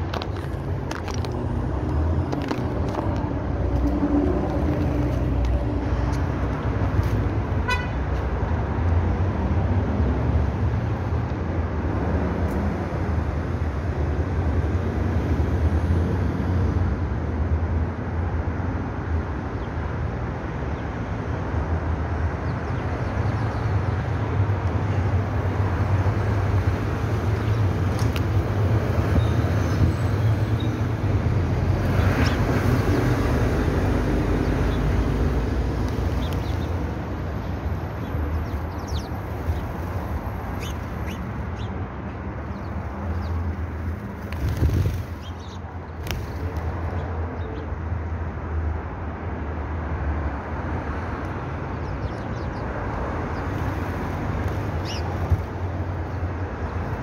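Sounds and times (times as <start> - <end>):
road traffic noise: 0.0 - 57.0.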